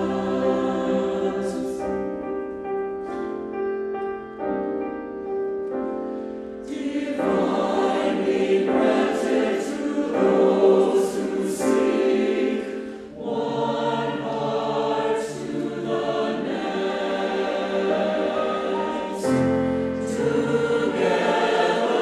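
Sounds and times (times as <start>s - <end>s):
choir singing slow piece: 0.0s - 3.8s, 5.8s - 22.0s
piano passage: 0.0s - 22.0s.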